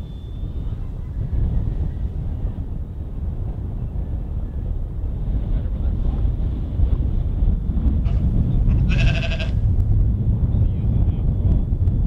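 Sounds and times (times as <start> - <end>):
wind buffeting microphone: 0.0 - 12.0
sheep bleating: 8.1 - 9.6.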